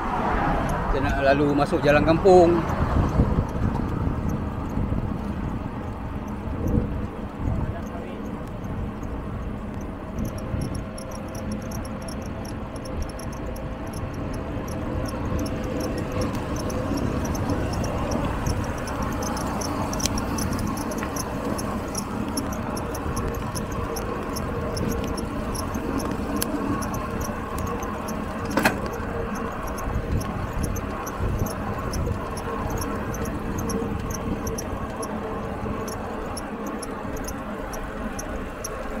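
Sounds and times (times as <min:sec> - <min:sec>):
tyres rolling on asphalt: 0:00.0 - 0:39.0
wind rushing over microphone: 0:00.0 - 0:39.0
rapid high-pitched pulsing: 0:09.0 - 0:39.0
sharp click: 0:27.6 - 0:29.0.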